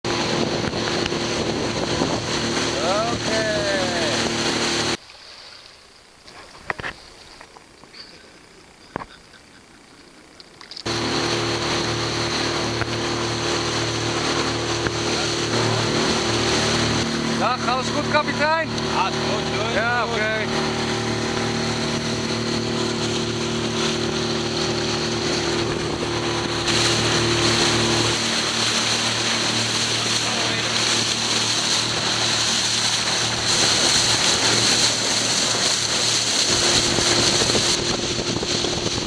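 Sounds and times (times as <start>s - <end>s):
motorboat engine running: 0.0s - 5.0s, 5.9s - 39.0s
rushing wind and water: 0.0s - 5.8s, 10.8s - 39.0s.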